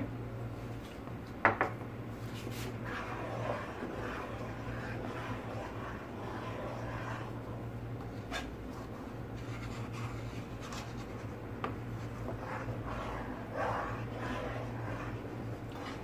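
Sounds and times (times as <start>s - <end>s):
steady low hum: 0.0s - 16.0s
wooden spoon scraping a pan: 2.2s - 16.0s.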